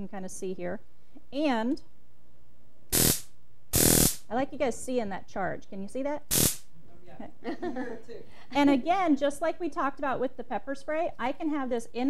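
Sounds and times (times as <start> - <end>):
stun gun buzzing: 2.9 - 4.3, 6.3 - 6.7.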